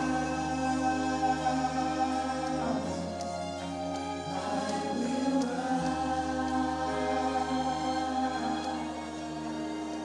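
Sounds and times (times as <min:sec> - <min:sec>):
choir singing gospel: 0:00.0 - 0:10.0
lead singer on microphone: 0:00.0 - 0:10.0.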